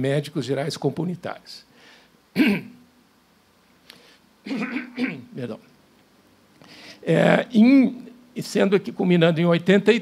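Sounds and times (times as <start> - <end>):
man clearing his throat: 2.4 - 2.8, 4.5 - 5.3.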